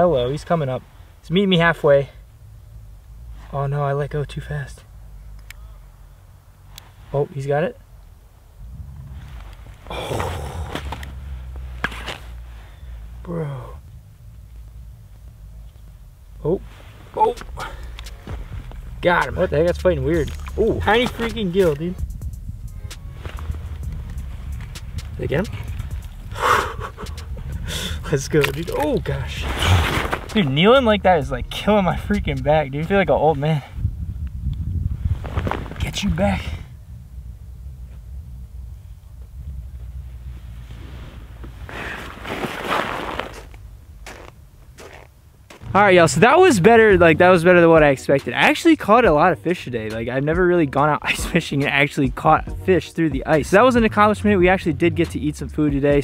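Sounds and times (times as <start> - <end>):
faint rustle: 0.0 - 46.1
low steady rumble: 0.0 - 56.0
wind buffeting microphone: 7.8 - 13.2, 13.8 - 47.9.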